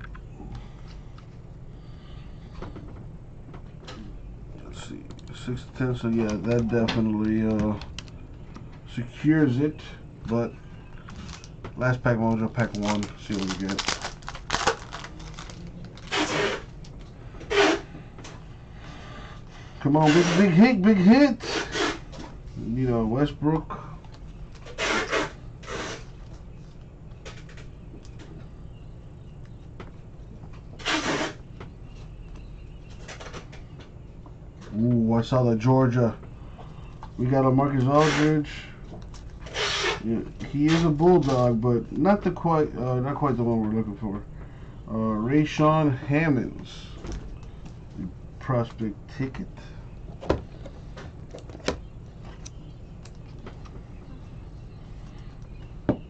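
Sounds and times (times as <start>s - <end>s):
cards shuffling: 12.3s - 16.6s.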